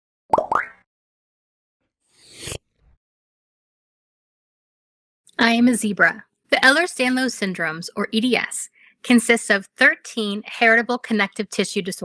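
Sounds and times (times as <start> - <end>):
cartoon bloop pops: 0.3 - 0.9.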